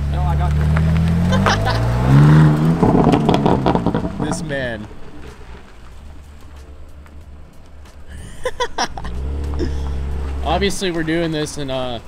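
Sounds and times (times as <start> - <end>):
distant car engine rumbling: 0.0 - 12.0
people laughing: 1.2 - 2.2, 8.1 - 10.0.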